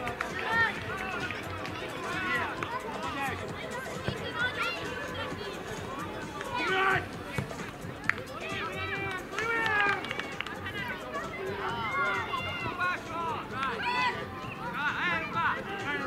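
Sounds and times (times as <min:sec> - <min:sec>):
boys shouting: 0:00.3 - 0:07.5, 0:08.2 - 0:16.0.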